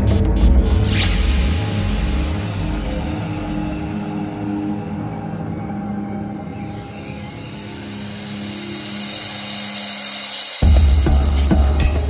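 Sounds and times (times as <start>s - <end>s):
ambient synth pad music: 0.0s - 12.0s.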